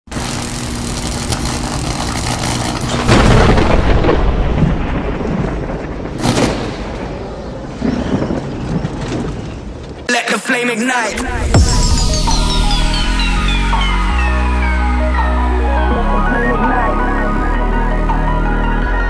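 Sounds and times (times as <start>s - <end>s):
heavy boom: 3.0s - 9.2s, 11.2s - 13.6s.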